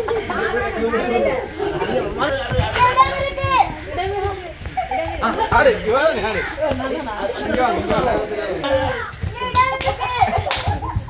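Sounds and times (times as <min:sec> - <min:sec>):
group calling out and chanting: 0:00.0 - 0:10.5
low thumps: 0:02.1 - 0:05.8.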